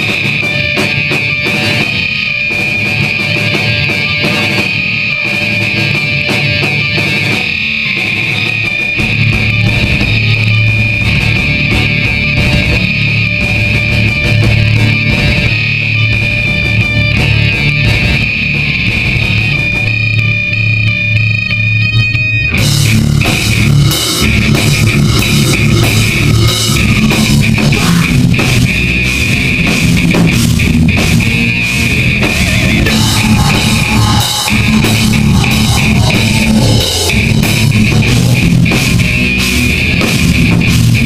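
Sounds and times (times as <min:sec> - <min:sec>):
drum kit and cymbals: 0:00.0 - 0:20.8, 0:22.5 - 0:41.0
bass guitar: 0:00.0 - 0:41.0
distorted electric guitar riffing: 0:00.0 - 0:41.0.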